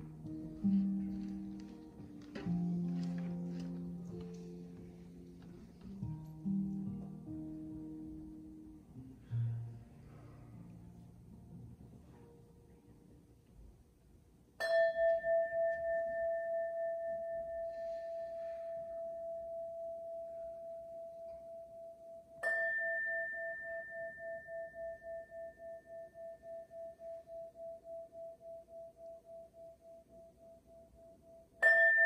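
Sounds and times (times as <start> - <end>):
singing bowl ringing: 14.6 - 17.8, 18.8 - 32.0.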